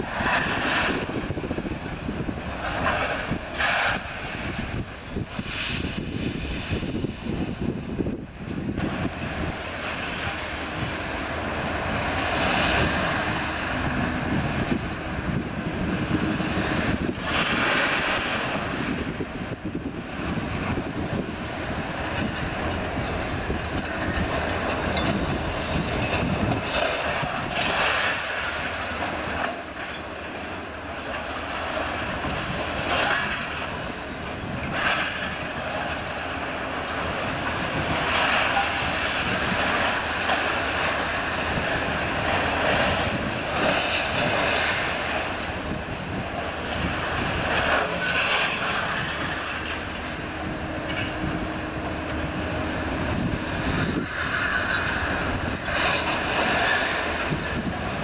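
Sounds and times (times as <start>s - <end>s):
diesel engines and hydraulics running: 0.0s - 58.0s.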